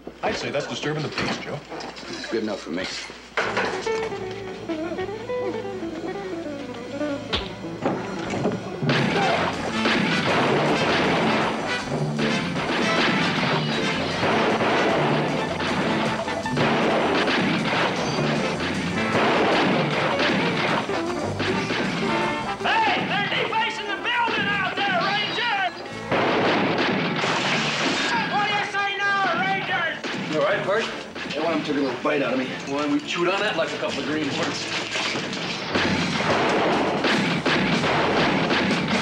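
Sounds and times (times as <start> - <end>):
background music: 3.2 - 39.0
gunshots and crashes: 8.8 - 23.3, 26.1 - 28.7, 33.8 - 39.0.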